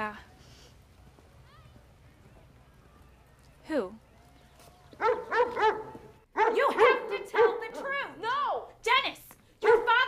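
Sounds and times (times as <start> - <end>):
dog barking: 5.0 - 7.9, 9.6 - 10.0.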